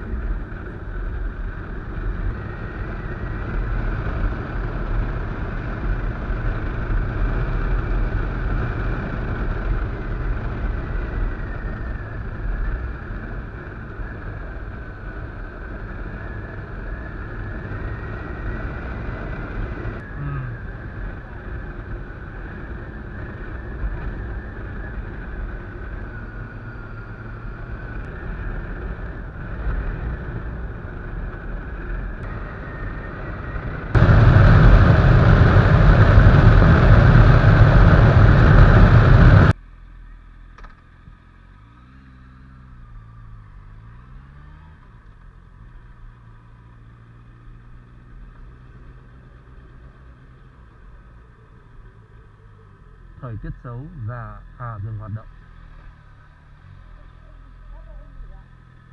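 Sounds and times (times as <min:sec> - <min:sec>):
motorcycle engine running: 0:00.0 - 0:53.8, 0:55.2 - 0:58.9
wind noise on microphone: 0:28.1 - 0:39.6.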